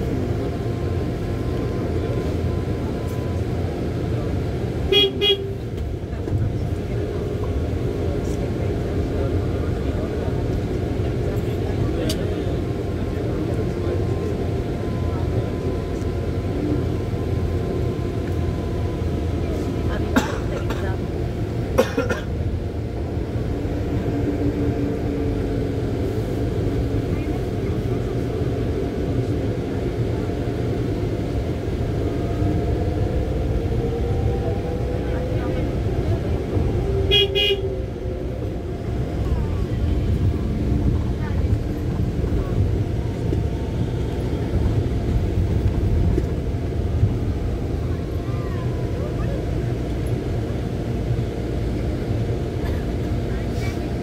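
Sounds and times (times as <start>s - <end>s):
vehicle engine rumble and road noise: 0.0s - 54.0s
car horn toot: 4.9s - 5.6s, 37.1s - 37.7s.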